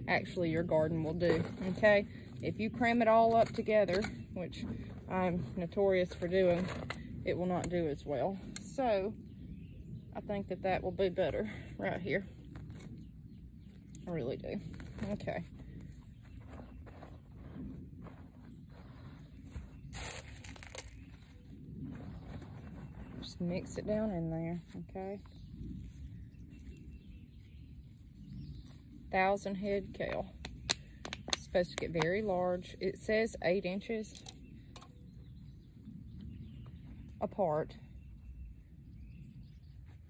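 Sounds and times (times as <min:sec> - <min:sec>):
gloved hands working dirt: 0:00.0 - 0:09.1, 0:10.3 - 0:37.8
soft rustles and clicks: 0:11.2 - 0:32.5.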